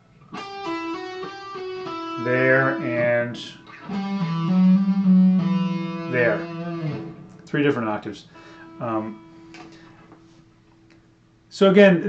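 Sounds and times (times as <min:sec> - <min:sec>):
electric guitar legato lick: 0:00.3 - 0:09.8.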